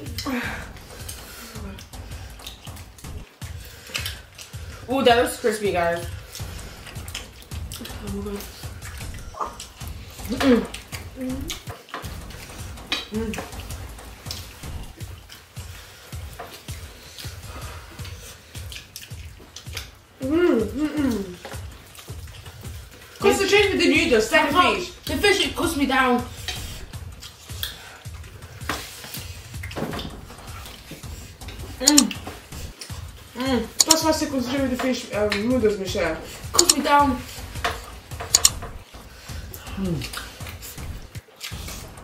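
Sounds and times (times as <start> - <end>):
chopsticks clicking against plates: 0.0 - 4.8, 6.0 - 15.6, 16.2 - 20.0, 20.9 - 23.2, 26.4 - 34.1, 36.3 - 41.8
person humming: 20.2 - 21.5
chopsticks clicking on plates: 31.5 - 33.0, 33.8 - 34.1, 36.6 - 38.8.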